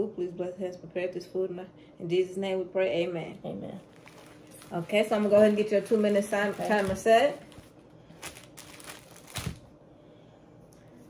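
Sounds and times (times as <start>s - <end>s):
paper towel crinkling: 3.8s - 9.6s.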